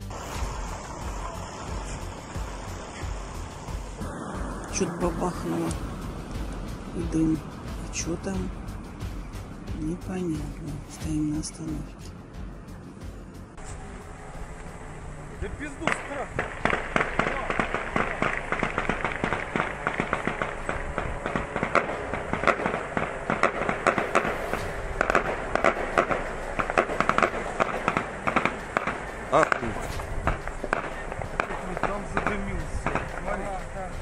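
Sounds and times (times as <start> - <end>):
rapid popping and cracks: 15.8 - 33.3
indistinct voices: 27.6 - 34.0.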